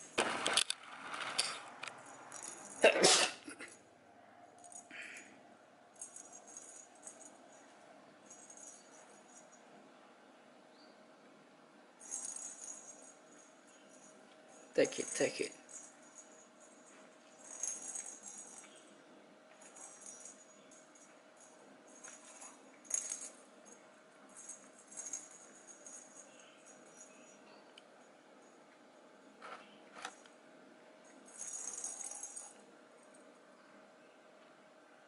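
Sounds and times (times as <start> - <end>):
jingle bell rattling in toy ball: 1.0 - 2.9, 6.0 - 9.6, 12.0 - 18.8, 19.6 - 27.5, 31.2 - 32.6.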